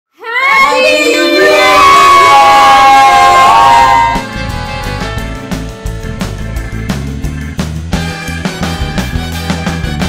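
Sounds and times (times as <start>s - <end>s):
group of voices cheering: 0.2s - 4.7s.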